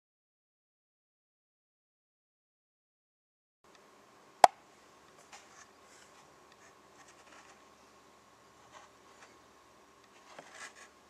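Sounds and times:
light hum: 0:03.7 - 0:11.0.

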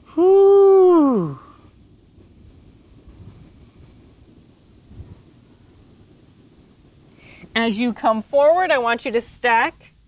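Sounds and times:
wind rumble on microphone: 0:01.9 - 0:07.6.

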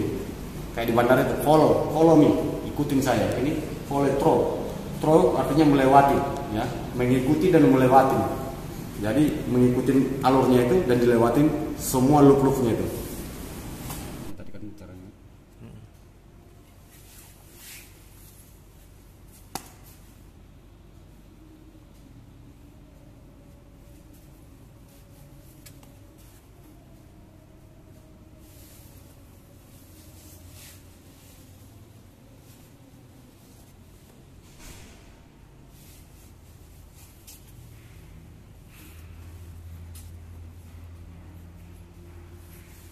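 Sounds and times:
low steady hum: 0:00.0 - 0:42.9.

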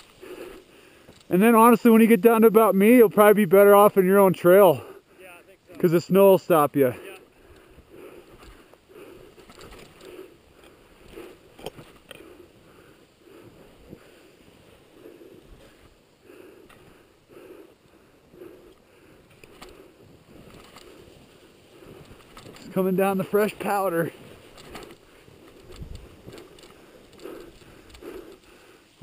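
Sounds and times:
footsteps crunching in snow: 0:19.2 - 0:29.0.

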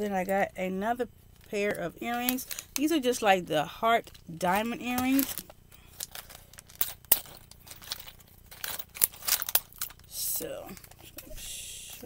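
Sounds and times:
plastic packet crinkling: 0:01.3 - 0:11.2.

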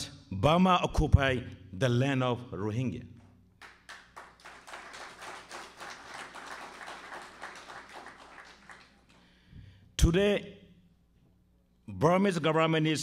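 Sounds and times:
speech: 0:00.0 - 0:03.2, 0:10.0 - 0:10.6, 0:11.9 - 0:13.0
audience applauding: 0:03.6 - 0:09.4.

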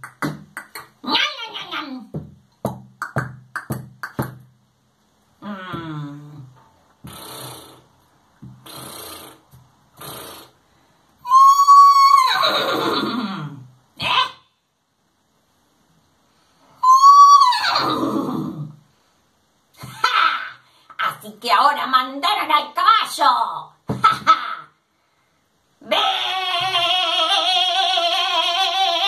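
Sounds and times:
soft noisy bursts: 0:00.0 - 0:24.1
horse whinnying: 0:11.3 - 0:13.3, 0:16.8 - 0:18.6.

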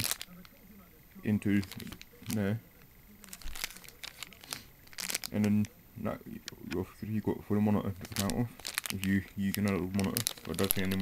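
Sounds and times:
plastic bag crinkling: 0:00.0 - 0:00.6, 0:01.3 - 0:02.6, 0:03.2 - 0:11.0.

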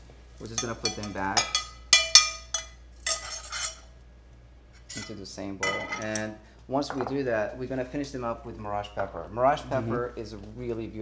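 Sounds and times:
metal spoon scraping a frying pan: 0:00.6 - 0:03.9.

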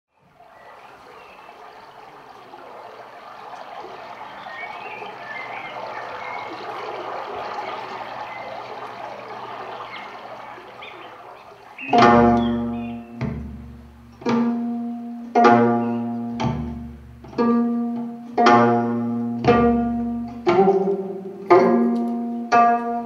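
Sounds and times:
steady rushing like flowing water: 0:00.1 - 0:23.0.

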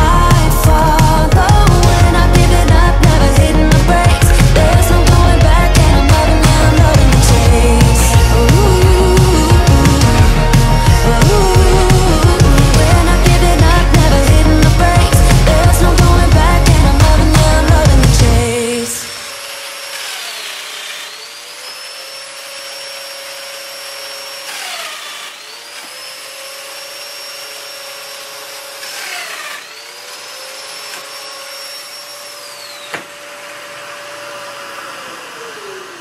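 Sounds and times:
dust extractor running: 0:00.0 - 0:36.0
power joiner motor whine: 0:00.0 - 0:36.0.

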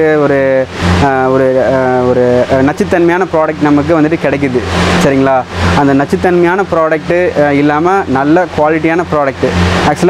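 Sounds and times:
man talking: 0:00.0 - 0:10.0
steady low hum: 0:00.0 - 0:10.0.

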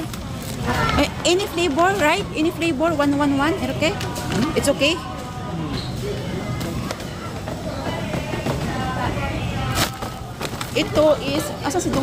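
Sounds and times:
murmur of voices: 0:00.0 - 0:12.0
plastic snack bag rustling: 0:09.7 - 0:11.5.

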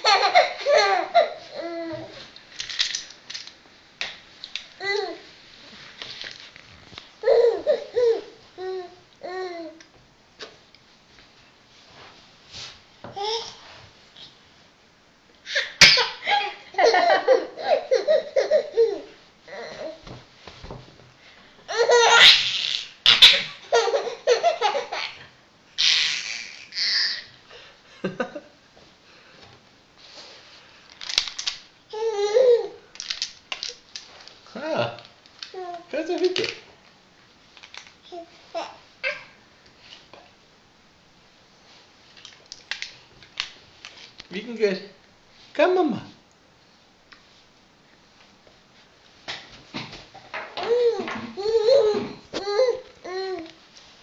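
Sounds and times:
baby laughing: 0:00.0 - 0:02.1, 0:07.2 - 0:09.6, 0:15.5 - 0:20.0, 0:21.7 - 0:25.2, 0:32.0 - 0:32.8, 0:50.6 - 0:53.3.

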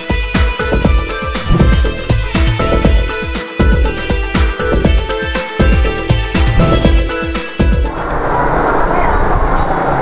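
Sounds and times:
passing motor traffic rumble: 0:05.9 - 0:10.0.

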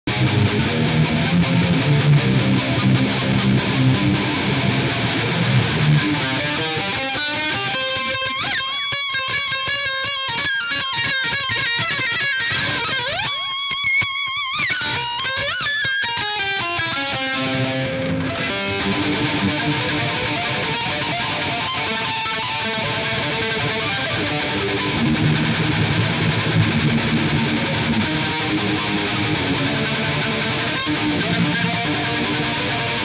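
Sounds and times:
electric violin rock improvisation: 0:00.1 - 0:33.0.

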